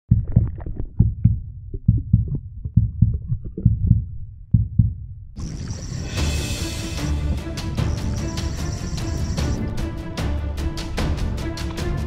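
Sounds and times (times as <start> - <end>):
low underwater thuds: 0.1 - 5.4
music: 5.4 - 12.0.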